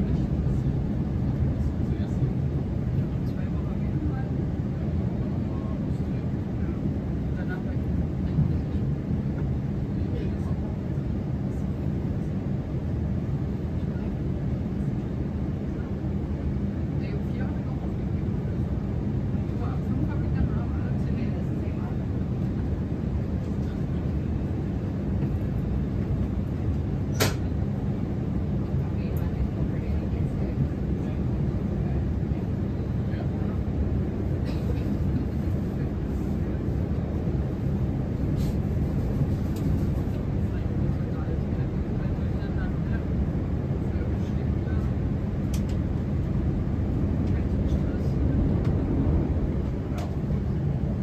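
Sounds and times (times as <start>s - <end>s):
electric train rumbling: 45.5s - 51.0s.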